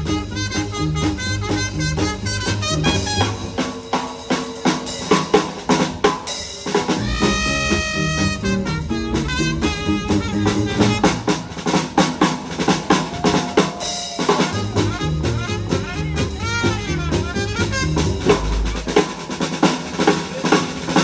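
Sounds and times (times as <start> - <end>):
swing jazz band playing: 0.0 - 21.0
snare and bass drum hits: 6.8 - 13.2.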